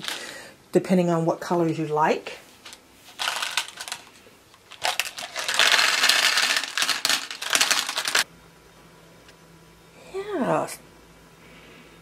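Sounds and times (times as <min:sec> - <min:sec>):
glass gems clattering: 0:04.8 - 0:08.2.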